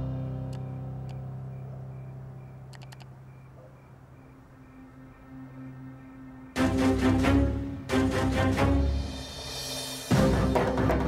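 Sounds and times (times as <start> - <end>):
computer mouse clicks: 2.7 - 3.1
soundtrack music: 4.2 - 11.0.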